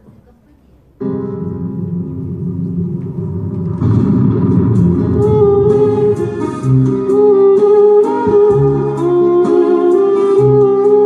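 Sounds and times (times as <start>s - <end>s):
backing track music: 1.0s - 11.0s
electric violin melody: 5.2s - 11.0s.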